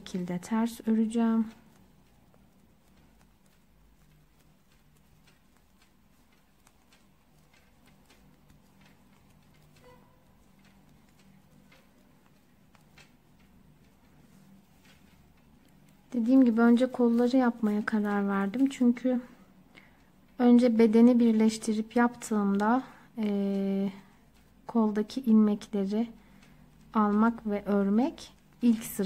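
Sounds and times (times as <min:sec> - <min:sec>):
knitting needles clicking: 0:00.0 - 0:29.0.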